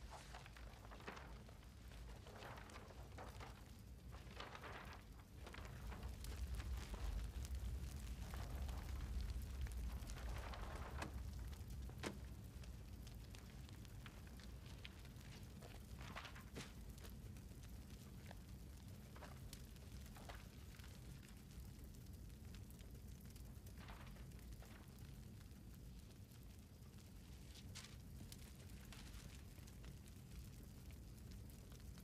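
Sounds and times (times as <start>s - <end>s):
bonfire crackling: 0.0s - 32.0s.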